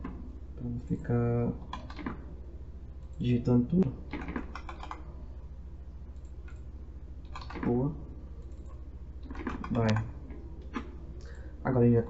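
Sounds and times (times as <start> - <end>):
steady low hum: 0.0 - 12.0
keyboard typing: 1.6 - 2.2, 4.1 - 5.1, 7.2 - 7.8, 8.4 - 11.0.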